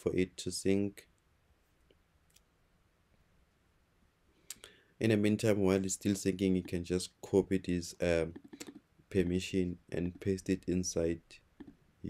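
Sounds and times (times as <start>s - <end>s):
faint clicks: 8.3s - 8.9s.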